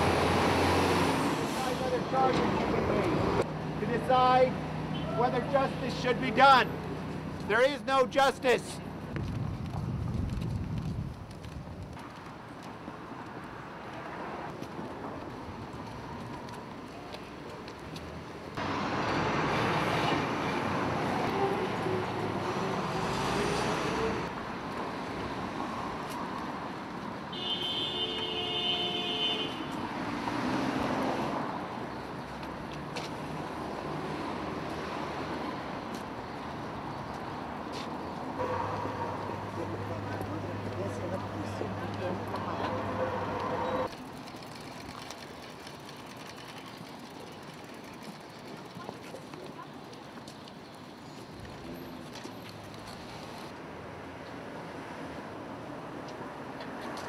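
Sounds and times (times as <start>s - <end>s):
city street traffic: 0.0s - 57.0s.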